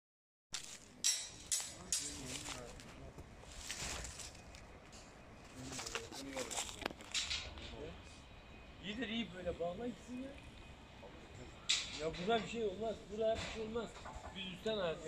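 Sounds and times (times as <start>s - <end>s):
faint indistinct voices: 0.8s - 15.0s.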